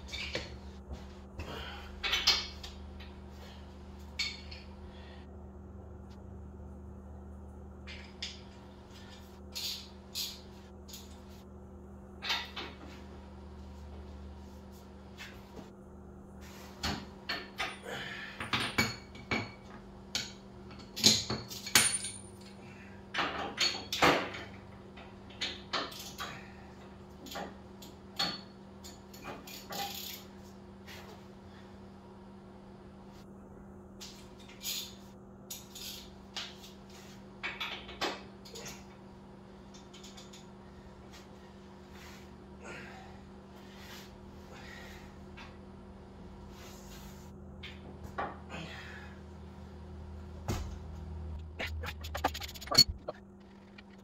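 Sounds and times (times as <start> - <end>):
wrenches clanking on metal: 2.0 - 3.1, 28.2 - 30.2.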